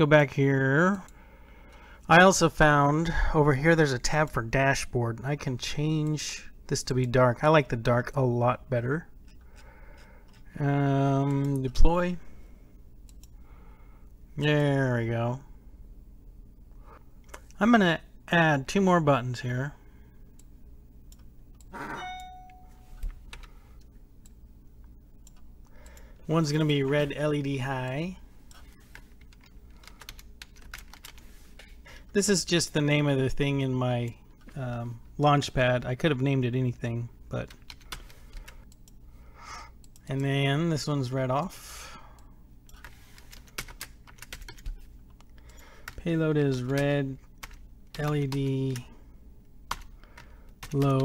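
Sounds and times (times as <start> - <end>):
steady beep tone: 21.8 - 22.9.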